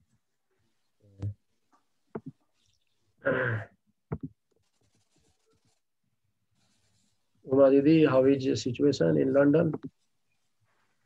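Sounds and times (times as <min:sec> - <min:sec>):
faint scratching: 0:04.5 - 0:05.9, 0:06.5 - 0:07.8, 0:09.0 - 0:11.0.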